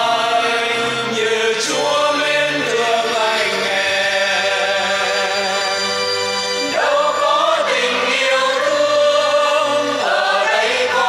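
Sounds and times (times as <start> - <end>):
choir singing a held chord: 0.0 - 11.0.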